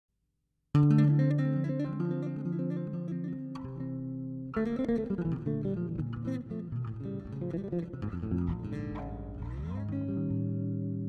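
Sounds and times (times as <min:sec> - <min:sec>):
electric bass plucked notes: 0:00.8 - 0:11.0.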